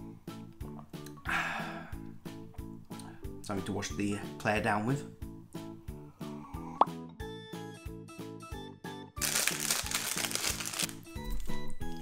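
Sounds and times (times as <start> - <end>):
foil wrapper crinkling: 9.2 - 12.0.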